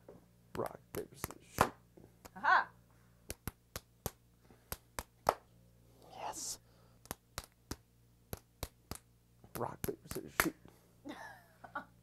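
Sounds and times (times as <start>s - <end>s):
fists slapping palms: 0.5s - 2.4s, 3.2s - 10.7s.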